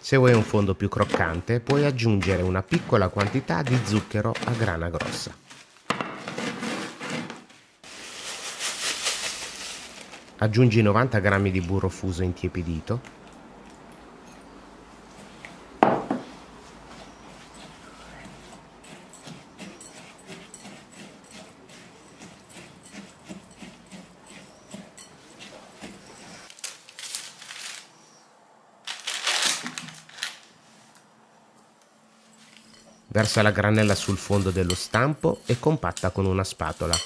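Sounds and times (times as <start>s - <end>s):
spatula scraping glass bowl: 0.2s - 5.6s, 6.2s - 7.4s, 16.9s - 26.5s, 32.6s - 35.7s.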